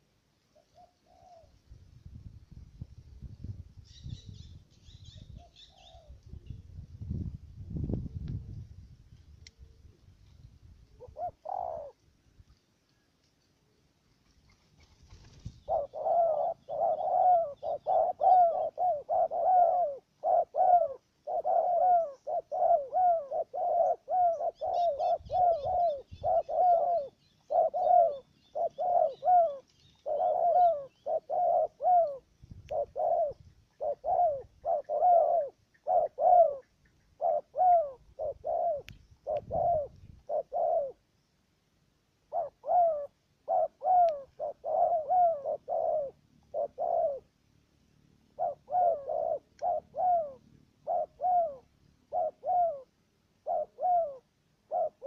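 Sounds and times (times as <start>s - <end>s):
doves cooing: 0.0s - 1.6s, 5.0s - 6.4s, 10.9s - 12.0s, 14.3s - 41.1s, 42.2s - 47.4s, 48.3s - 55.0s.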